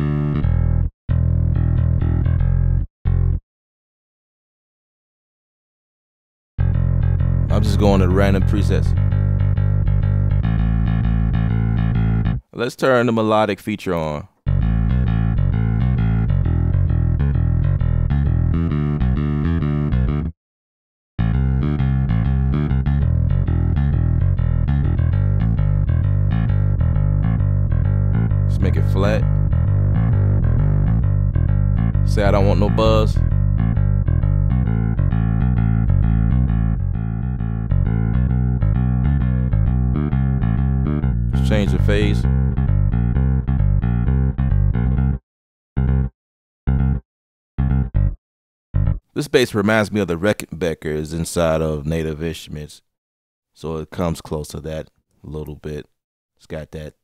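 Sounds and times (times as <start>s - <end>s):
electric bass pattern: 0.0s - 3.4s, 6.6s - 12.5s, 14.5s - 20.3s, 21.2s - 45.2s, 45.8s - 46.1s, 46.7s - 47.0s, 47.6s - 48.2s, 48.8s - 49.2s.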